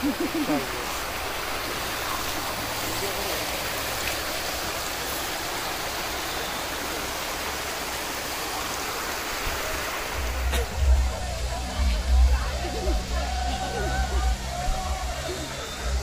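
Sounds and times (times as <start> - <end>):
stream running over rocks: 0.0 - 16.0.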